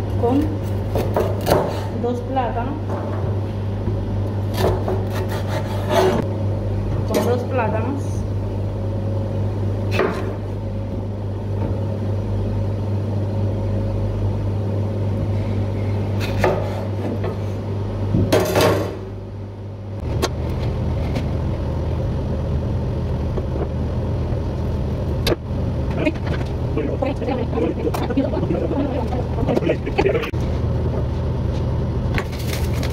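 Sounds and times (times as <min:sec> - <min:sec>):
low machine hum: 0:00.0 - 0:32.9.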